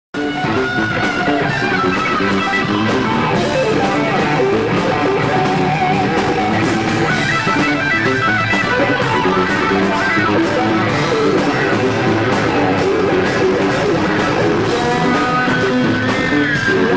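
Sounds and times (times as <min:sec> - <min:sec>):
live rock music with electric guitar: 0:00.2 - 0:16.9.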